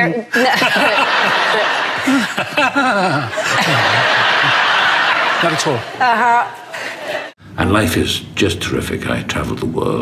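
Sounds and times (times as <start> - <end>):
studio audience laughing: 0.3 - 7.4
person chuckling: 2.0 - 3.9.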